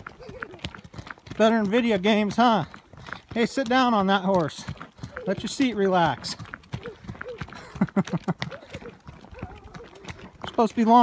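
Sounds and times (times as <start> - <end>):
horse hoofbeats on dirt: 0.0 - 11.0.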